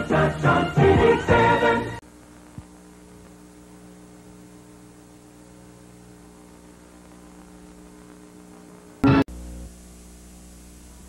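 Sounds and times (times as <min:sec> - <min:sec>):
electrical mains hum: 0:00.0 - 0:11.0
faint tape hiss: 0:00.0 - 0:11.0.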